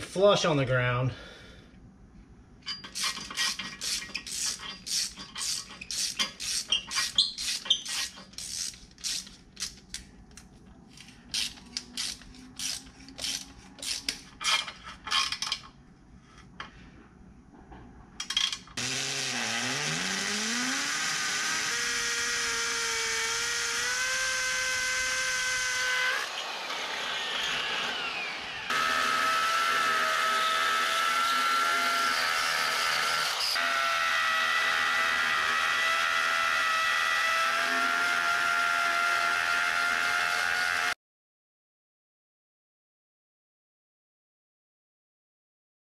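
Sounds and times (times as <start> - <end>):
drill boring into concrete: 2.7 - 9.3, 18.8 - 41.0
ratchet wrench clicking: 2.7 - 10.0, 11.3 - 15.6.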